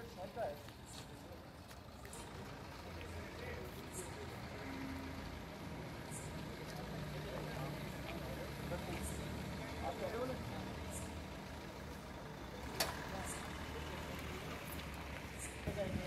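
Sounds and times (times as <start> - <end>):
crowd chatter: 0.0 - 16.0
vehicle engine idling: 0.0 - 16.0.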